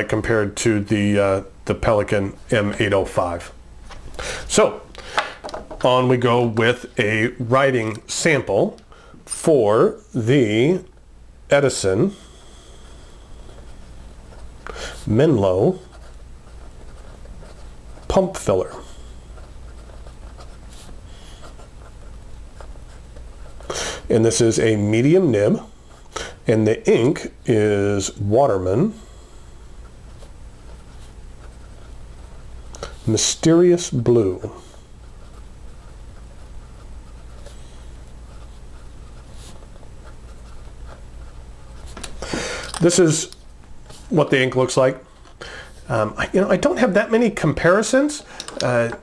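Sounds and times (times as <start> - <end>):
pen nib scratching on paper: 15.7 - 18.5
pen nib scratching paper: 15.7 - 18.5, 19.3 - 23.8.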